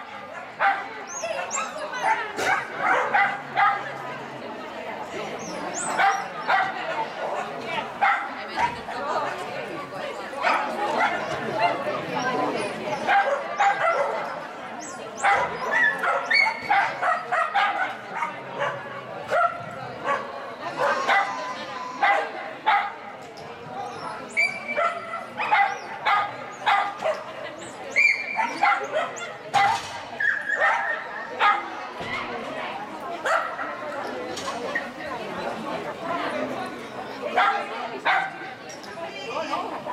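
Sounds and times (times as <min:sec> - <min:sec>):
people's voices: 0:00.0 - 0:39.9.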